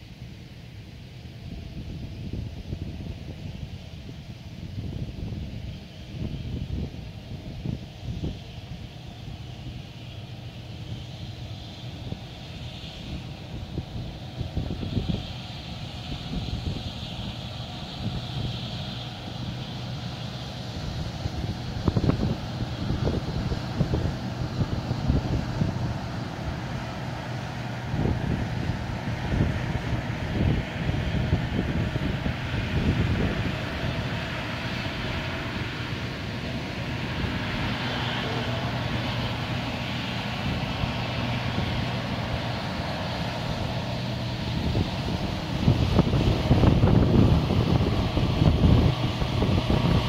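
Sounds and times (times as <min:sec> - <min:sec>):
combine harvester engine: 0:00.0 - 0:50.0
threshing machinery whine: 0:00.0 - 0:50.0
wind buffeting microphone: 0:01.2 - 0:50.0.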